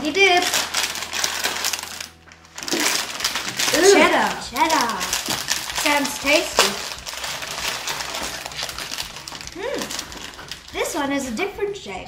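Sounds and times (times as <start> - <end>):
plastic snack packet crinkling: 0.0 - 11.5.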